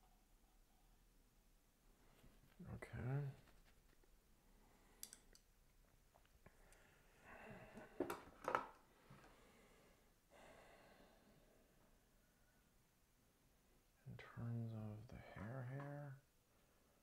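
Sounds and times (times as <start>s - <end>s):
soft breath-like sounds: 4.4s - 5.3s, 6.4s - 8.1s, 8.8s - 12.8s
faint sharp clicks: 5.0s - 5.5s.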